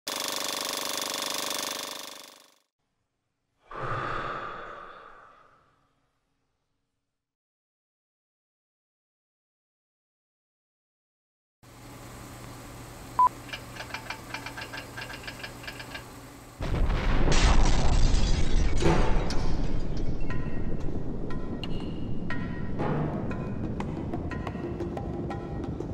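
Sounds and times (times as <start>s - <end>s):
film projector clattering: 0.1s - 2.6s, 13.4s - 16.2s.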